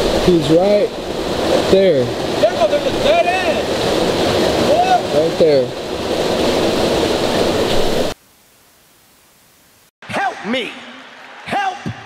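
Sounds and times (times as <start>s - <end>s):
creek water rushing over rocks: 0.0s - 8.2s.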